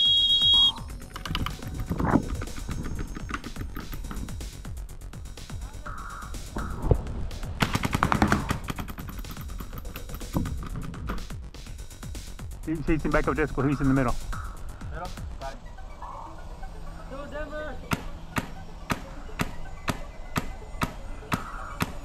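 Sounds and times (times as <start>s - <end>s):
paintball markers firing: 7.6s - 11.2s.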